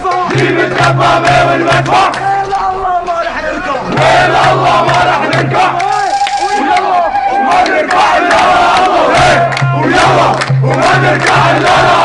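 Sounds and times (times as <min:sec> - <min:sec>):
crowd chanting and shouting: 0:00.0 - 0:12.0.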